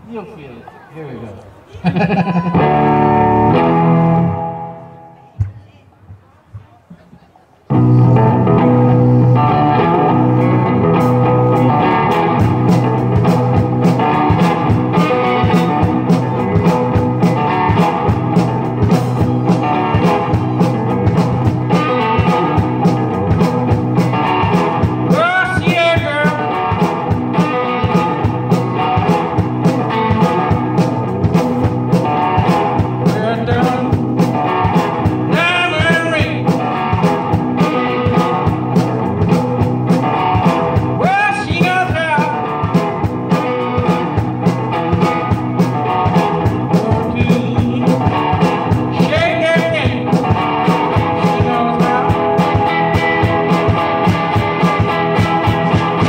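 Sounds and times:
blues guitar: 0:01.4 - 0:05.5, 0:07.6 - 0:56.0
drum beat: 0:10.9 - 0:56.0.

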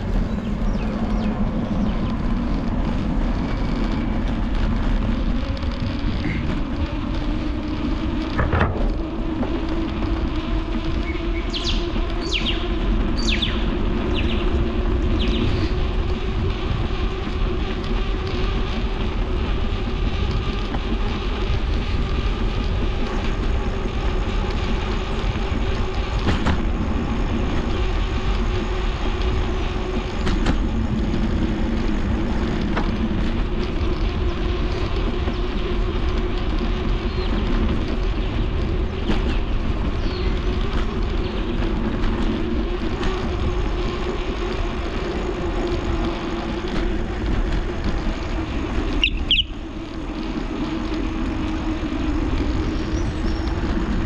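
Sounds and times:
bicycle tyre rumble on path: 0:00.0 - 0:54.0
wind on microphone: 0:00.0 - 0:54.0.

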